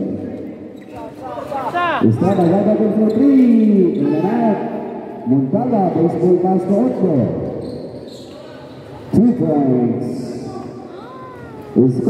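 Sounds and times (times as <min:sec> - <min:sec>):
man talking: 0:01.2 - 0:07.5, 0:09.1 - 0:10.8, 0:11.7 - 0:12.0.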